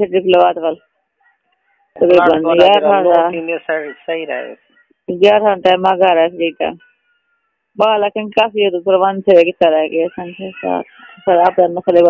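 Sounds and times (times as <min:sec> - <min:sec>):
voice over a telephone line: 0:02.0 - 0:06.8.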